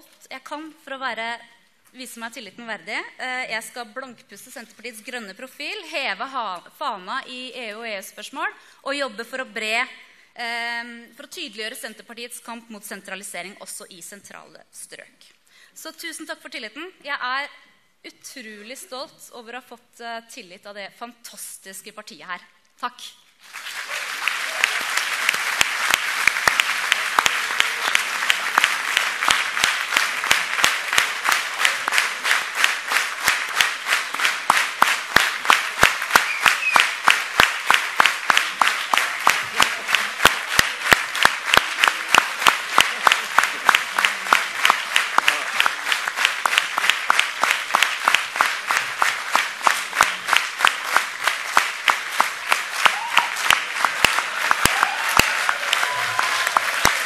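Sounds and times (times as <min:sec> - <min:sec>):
audience applauding: 0:23.4 - 0:57.0
rhythmic clapping in unison: 0:23.4 - 0:57.0.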